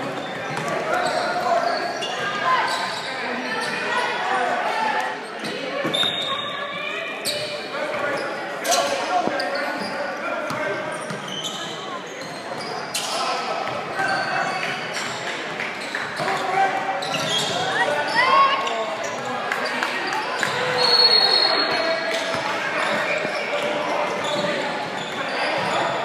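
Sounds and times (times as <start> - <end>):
sneakers squeaking: 0.1 - 26.0.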